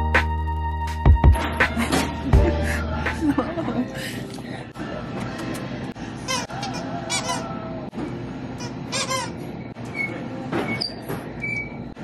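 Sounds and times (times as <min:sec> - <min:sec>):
dog toy squeaking: 0:06.3 - 0:07.5, 0:08.6 - 0:09.5.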